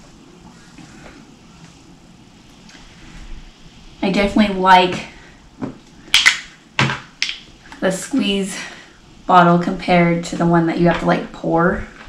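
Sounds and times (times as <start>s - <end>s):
plastic bottles and caps clicking: 6.1s - 7.5s.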